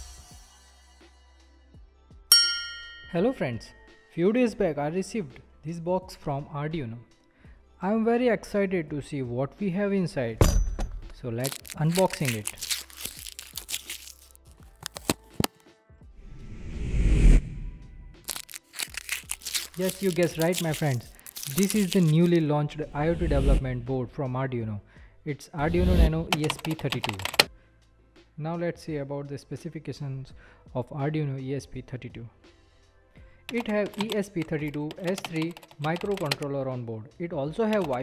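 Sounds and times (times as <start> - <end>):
packing material crinkling: 11.4 - 15.6, 18.2 - 22.4, 26.4 - 27.5, 33.5 - 36.4, 37.7 - 38.0
background music whoosh: 16.0 - 18.3, 19.0 - 24.3, 25.5 - 27.4.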